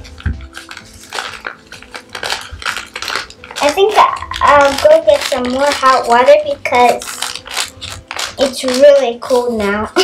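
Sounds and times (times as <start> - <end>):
paper packet crinkling: 0.0 - 10.0.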